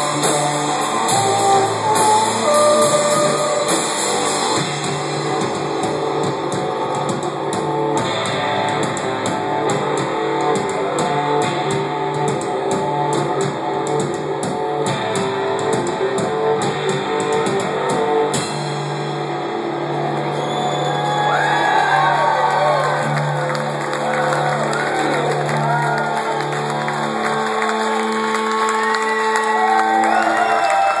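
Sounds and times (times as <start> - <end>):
rock band guitars strumming: 0.0 - 20.4
audience cheering and whooping: 20.1 - 31.0.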